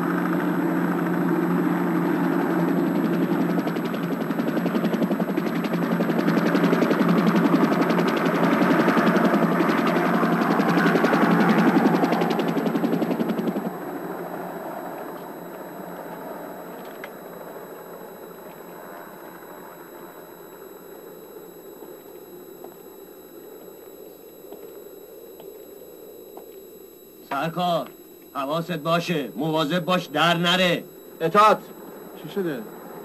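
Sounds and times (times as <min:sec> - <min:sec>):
helicopter rotor chopping: 0:00.0 - 0:25.7, 0:26.3 - 0:33.0
faint steady hum: 0:00.0 - 0:33.0
turbine whine: 0:00.0 - 0:33.0.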